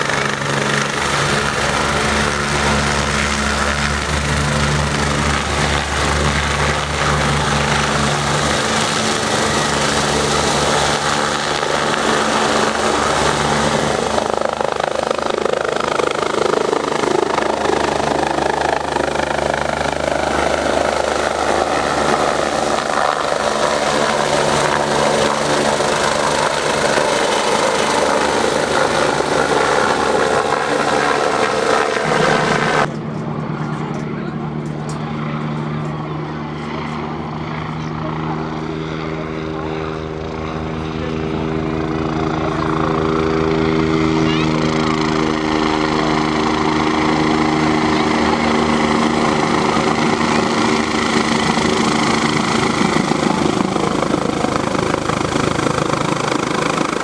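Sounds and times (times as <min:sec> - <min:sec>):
helicopter flying over: 0:00.0 - 0:57.0.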